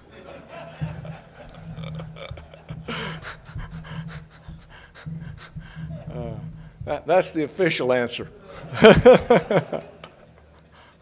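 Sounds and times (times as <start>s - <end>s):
man laughing breathily: 0.0s - 6.9s, 8.5s - 9.9s.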